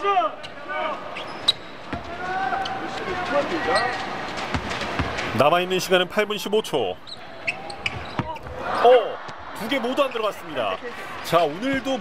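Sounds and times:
crowd voices: 0:00.0 - 0:12.0
basketball bouncing on hardwood: 0:04.5 - 0:05.2.

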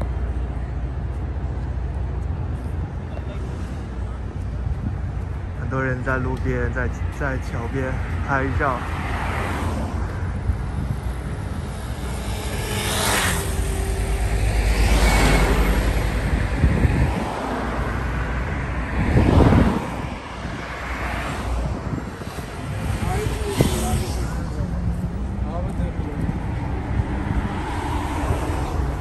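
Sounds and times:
low traffic rumble: 0:00.0 - 0:29.0
cars swishing past: 0:06.4 - 0:29.0.

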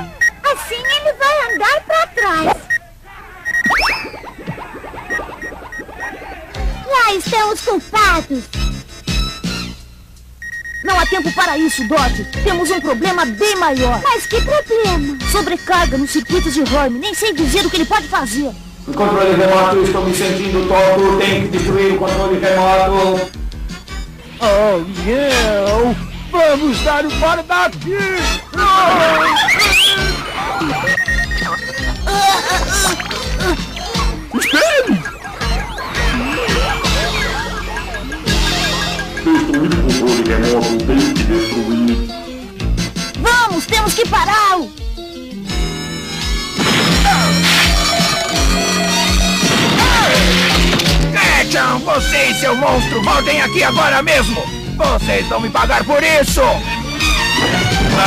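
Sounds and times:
faint pulsing beep: 0:03.4 - 0:06.8, 0:29.6 - 0:32.1, 0:33.7 - 0:39.4
rising whistle-like zip: 0:03.4 - 0:06.8, 0:29.4 - 0:30.2
falling electronic blips: 0:03.4 - 0:07.0, 0:29.3 - 0:32.1, 0:32.8 - 0:39.8
cartoon music with steady beat: 0:03.5 - 0:58.0.

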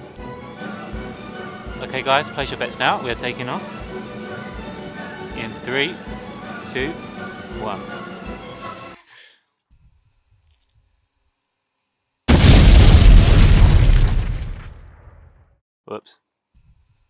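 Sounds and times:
background music: 0:00.0 - 0:09.0
loud explosion: 0:12.3 - 0:15.4.

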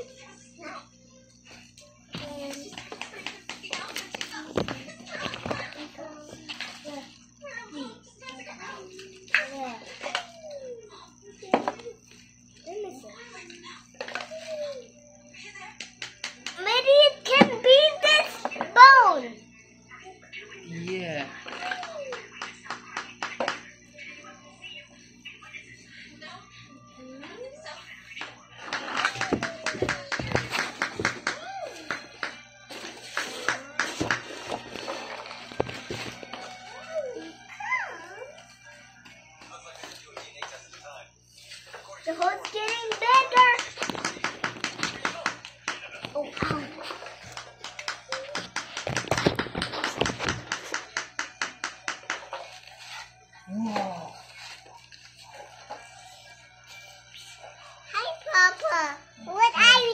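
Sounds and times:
child's voice: 0:02.1 - 0:02.8, 0:03.8 - 0:12.0, 0:12.6 - 0:15.6, 0:16.6 - 0:20.3, 0:26.2 - 0:27.9, 0:57.9 - 0:59.9.

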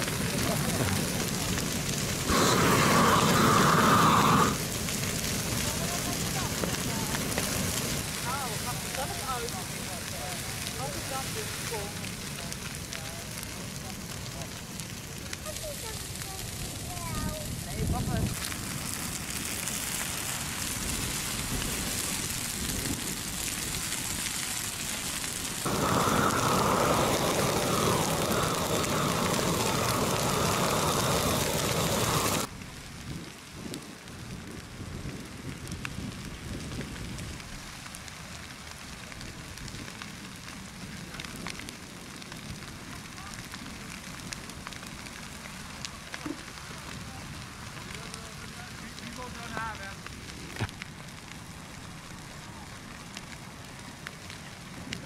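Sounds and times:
bonfire rushing roar: 0:00.0 - 0:55.0
fire crackling and popping: 0:00.0 - 0:55.0.

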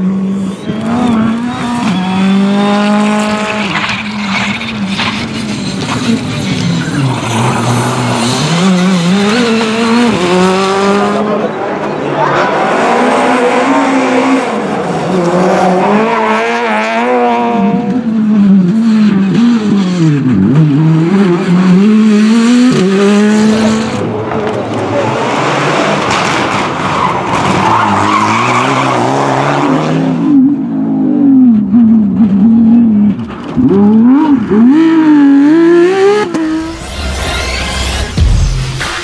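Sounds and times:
rally car engines revving: 0:00.0 - 0:39.0
tyre squeal: 0:03.3 - 0:09.6
rushing noise: 0:36.4 - 0:39.0.

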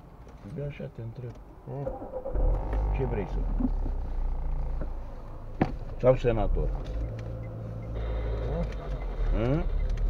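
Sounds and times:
car engine starting and idling: 0:01.6 - 0:10.0.

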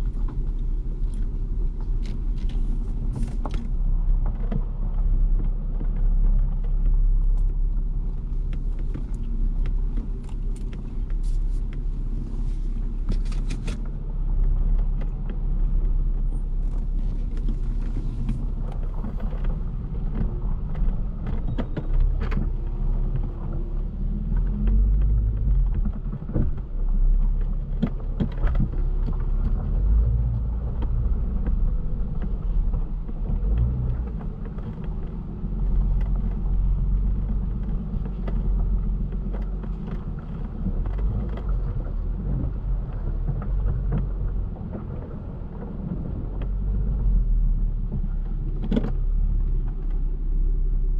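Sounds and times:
gravel clicks and ticks: 0:00.0 - 0:50.7
car driving on gravel: 0:00.0 - 0:50.9.

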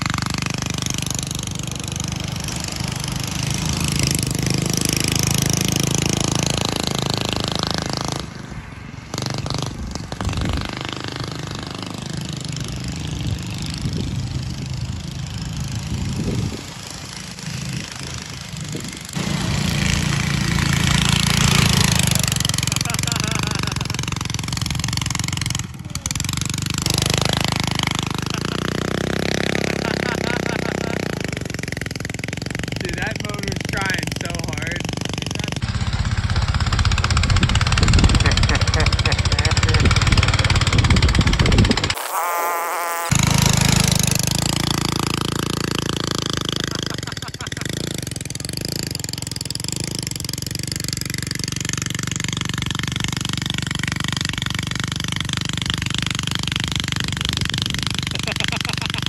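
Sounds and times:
go-kart engine revving: 0:00.0 - 0:59.0.

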